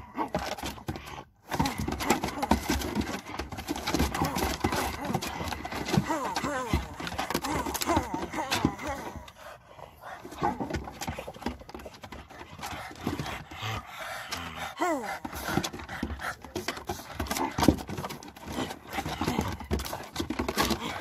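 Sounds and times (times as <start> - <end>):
claws clicking on wooden boards: 0.0 - 21.0
dogs panting and scuffling: 0.0 - 21.0.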